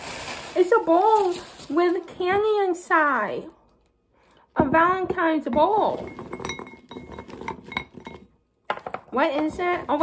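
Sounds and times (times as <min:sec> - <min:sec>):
candies clinking in a glazed bowl: 0:00.0 - 0:02.2, 0:05.5 - 0:10.0.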